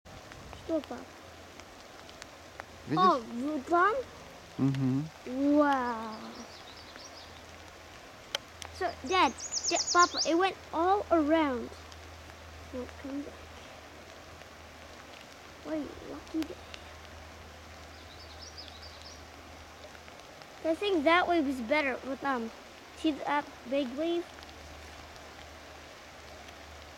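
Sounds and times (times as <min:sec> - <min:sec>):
steady outdoor hiss: 0:00.1 - 0:26.9
small birds twittering: 0:00.5 - 0:26.9
person saying wow: 0:02.9 - 0:03.3, 0:04.6 - 0:06.1
bird warbling: 0:08.8 - 0:10.5.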